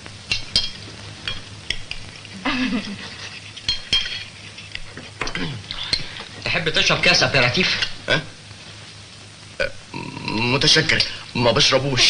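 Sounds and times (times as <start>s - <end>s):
low hiss: 0.0s - 12.0s.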